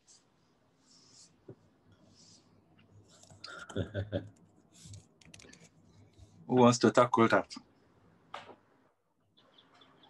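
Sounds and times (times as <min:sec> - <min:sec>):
quiet breath: 0:00.0 - 0:03.8
person laughing: 0:03.5 - 0:04.3.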